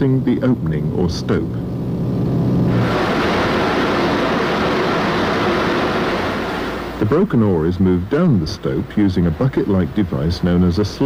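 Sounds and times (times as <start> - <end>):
mining machinery hissing rumble: 0.0 - 11.0.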